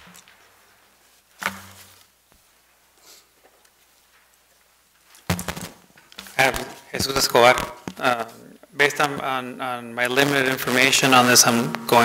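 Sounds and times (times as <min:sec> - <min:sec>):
microphone knocks and rustling: 0:05.2 - 0:08.0.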